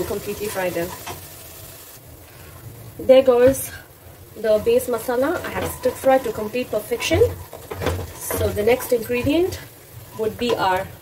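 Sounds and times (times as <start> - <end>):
spice paste sizzling in oil: 0.0 - 11.0
wooden spatula stirring: 4.4 - 10.9.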